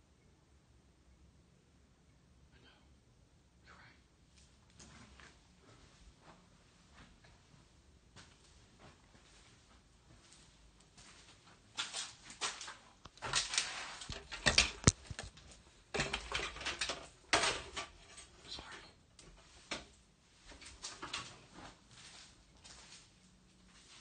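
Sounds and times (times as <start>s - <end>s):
scuffing and rustling: 4.3s - 15.6s, 19.2s - 24.0s.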